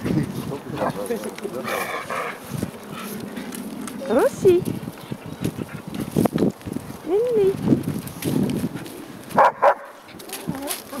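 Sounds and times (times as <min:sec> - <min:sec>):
dog barking: 0:09.4 - 0:10.0.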